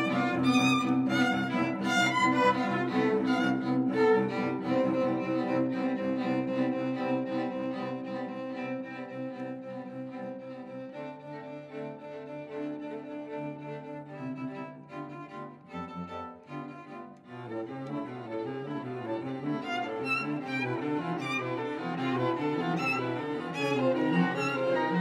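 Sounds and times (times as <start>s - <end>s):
string quartet playing: 0.0s - 25.0s.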